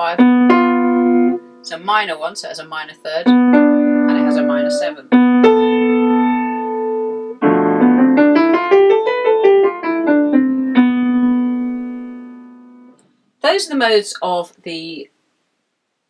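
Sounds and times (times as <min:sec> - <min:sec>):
piano scale and chords: 0:00.0 - 0:02.1, 0:02.9 - 0:13.0.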